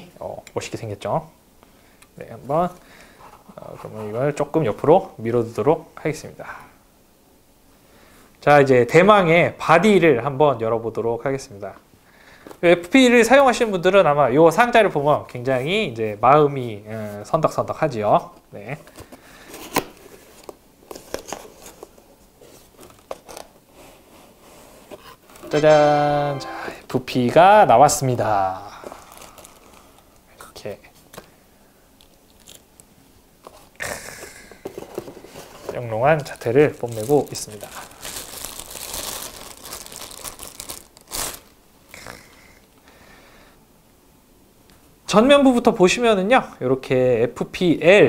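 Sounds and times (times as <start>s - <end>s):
plastic bag crinkling: 28.8s - 30.2s, 32.0s - 32.6s, 35.3s - 41.6s.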